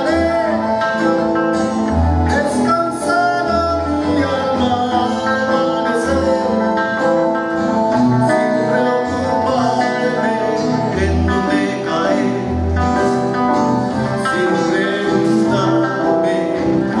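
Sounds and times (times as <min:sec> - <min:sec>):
accordion: 0:00.0 - 0:17.0
guitars: 0:00.0 - 0:17.0.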